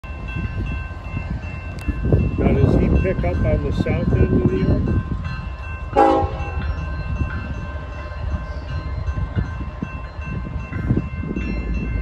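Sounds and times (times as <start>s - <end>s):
railroad crossing bell ringing: 0.0s - 12.0s.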